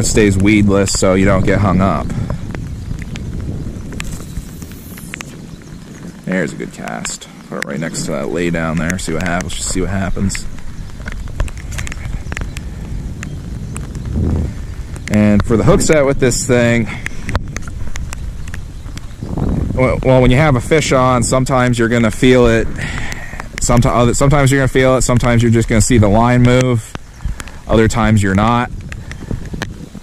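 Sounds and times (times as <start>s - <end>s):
wind rumble on microphone: 0.0s - 30.0s
light ticks: 8.6s - 14.1s, 16.9s - 19.2s.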